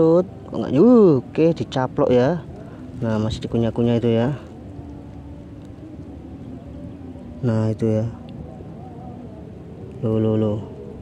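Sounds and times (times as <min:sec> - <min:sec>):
faint steady hum: 0:00.0 - 0:11.0
low outdoor rumble: 0:00.0 - 0:11.0.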